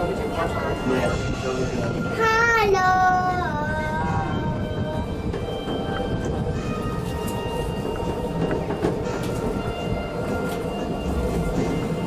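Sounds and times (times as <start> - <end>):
monorail car rumble: 0.0 - 12.0
child singing: 2.2 - 4.9.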